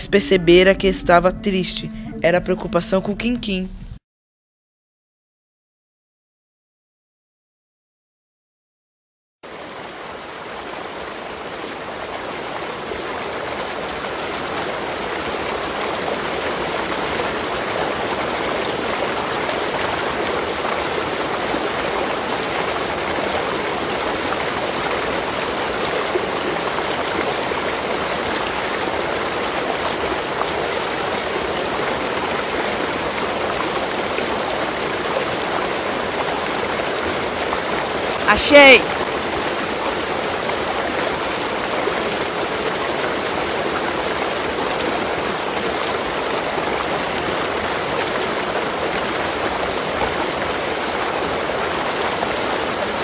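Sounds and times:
running splashing water: 0:09.5 - 0:53.0.

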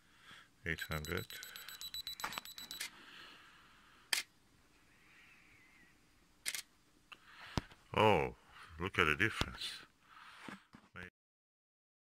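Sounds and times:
camera self-timer beeping: 0:00.8 - 0:02.9
camera shutter clicks: 0:06.4 - 0:06.7.

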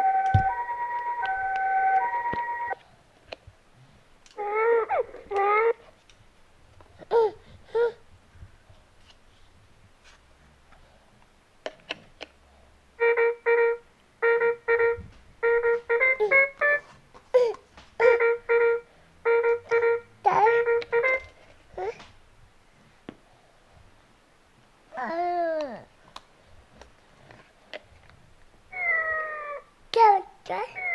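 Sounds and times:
recorded baby crying from toy speaker: 0:04.4 - 0:05.8, 0:30.5 - 0:30.9
toy cat meow: 0:28.7 - 0:29.7, 0:30.5 - 0:30.9.

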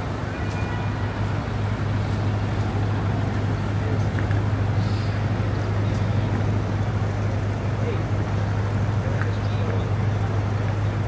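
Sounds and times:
traffic rumble: 0:00.0 - 0:11.0
faint indistinct voices: 0:02.1 - 0:11.0.

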